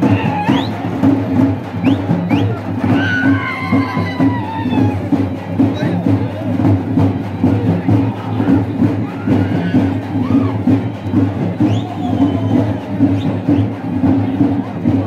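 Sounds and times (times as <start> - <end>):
crowd shouting: 0.0 - 5.3, 8.0 - 14.6
rhythmic percussion music: 0.0 - 15.0.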